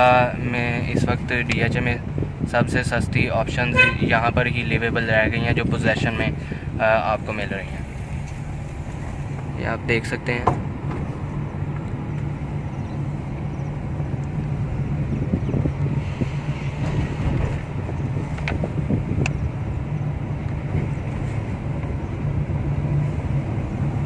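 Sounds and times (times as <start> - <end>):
car engine and tyre drone: 6.2 - 24.0.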